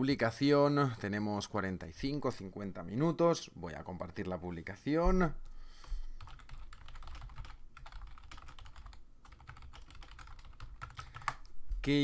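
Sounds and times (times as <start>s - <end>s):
typing on computer keyboard: 6.2s - 11.5s.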